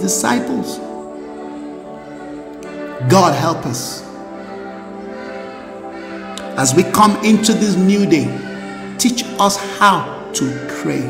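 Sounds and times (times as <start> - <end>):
soft instrumental music: 0.0 - 11.0.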